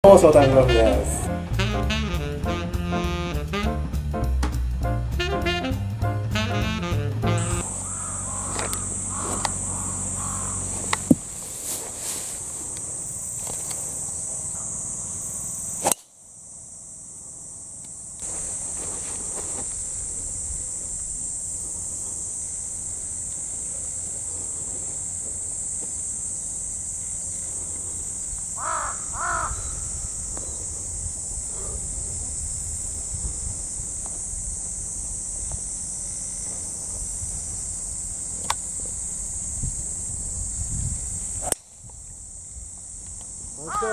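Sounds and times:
jazz saxophone music: 0.0 - 11.1
steady high-pitched hiss: 0.0 - 43.9
bird calling: 7.2 - 11.4, 28.6 - 30.8, 43.6 - 43.9.

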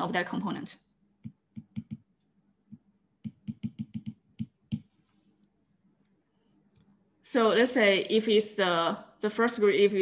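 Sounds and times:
stylus tapping on glass screen: 1.2 - 5.0.

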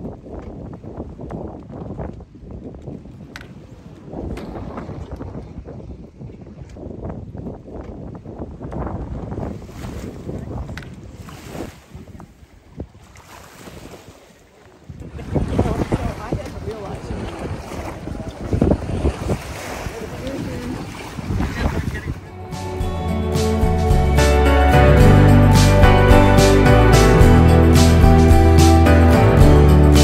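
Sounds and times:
wind buffeting microphone: 0.0 - 22.5
small waves lapping: 9.4 - 22.5.

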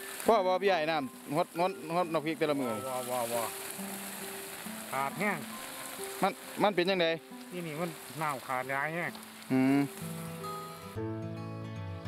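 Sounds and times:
water spraying from hose: 0.0 - 11.0
background music with held notes: 0.0 - 12.0.

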